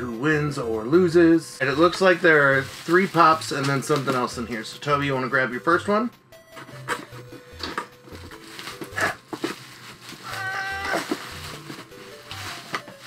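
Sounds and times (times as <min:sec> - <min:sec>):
faint background music: 0:00.0 - 0:13.0
bubble wrap crinkling: 0:01.7 - 0:04.6, 0:07.6 - 0:13.0.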